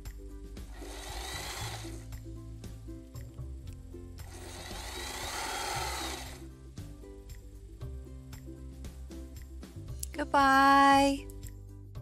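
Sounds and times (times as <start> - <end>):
background music: 0.0 - 12.0
sewing machine running: 0.7 - 2.0, 4.2 - 6.4.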